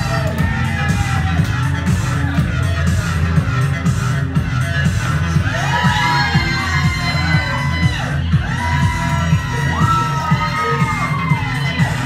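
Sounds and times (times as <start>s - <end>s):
crowd shrieking and cheering: 0.0s - 2.7s, 5.2s - 12.0s
pop music with heavy bass: 0.0s - 12.0s.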